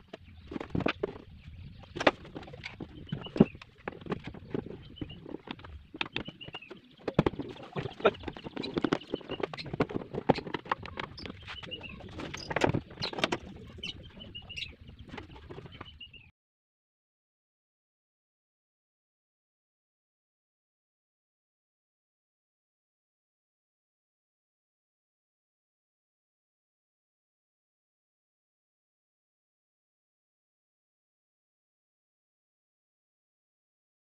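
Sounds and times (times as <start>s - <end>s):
bird chirping: 0.0s - 16.3s.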